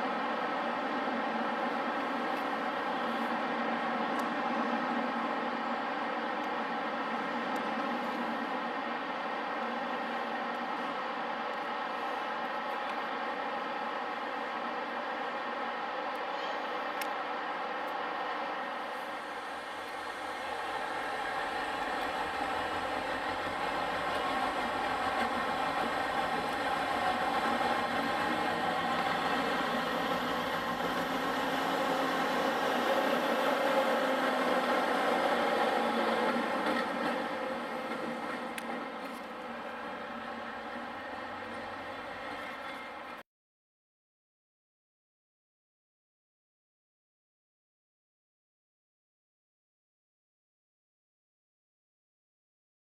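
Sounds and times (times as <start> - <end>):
diesel locomotive engine humming: 0.0 - 43.2.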